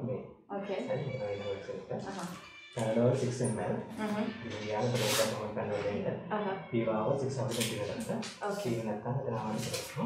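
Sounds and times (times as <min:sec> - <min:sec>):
adults talking: 0:00.0 - 0:10.0.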